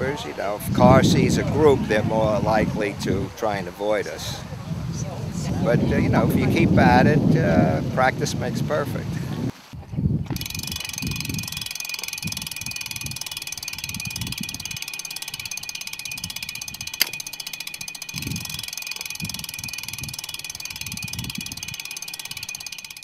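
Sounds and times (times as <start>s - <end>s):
low rumble of wind or road: 0.0s - 11.7s
bicycle freewheel ticking: 10.3s - 23.0s
sharp click: 16.4s - 19.4s.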